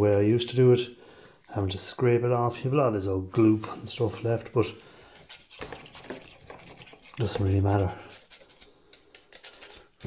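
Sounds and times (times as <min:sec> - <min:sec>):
toothbrush scrubbing circuit board: 0:05.2 - 0:10.0.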